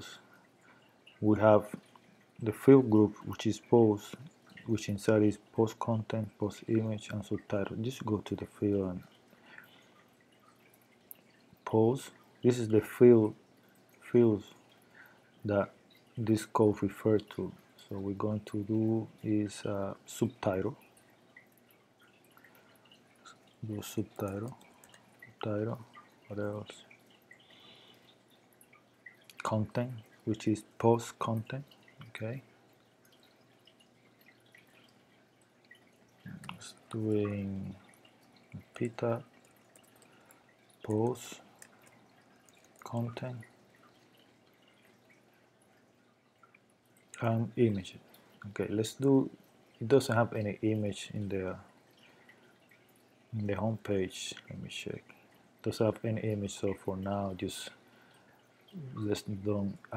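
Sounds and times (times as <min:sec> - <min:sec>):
person speaking: 0:23.3 - 0:24.7, 0:25.3 - 0:26.9, 0:36.3 - 0:37.8, 0:38.5 - 0:39.4, 0:40.8 - 0:41.8, 0:42.7 - 0:43.5, 0:47.1 - 0:51.6, 0:58.8 - 0:59.9.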